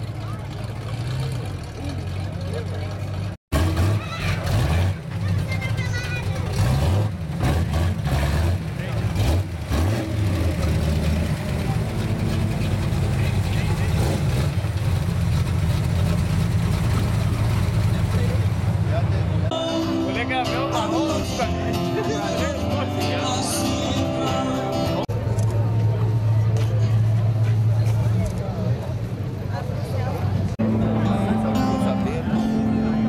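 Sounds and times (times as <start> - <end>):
vee eight engine revving and idling: 0.0 - 19.6.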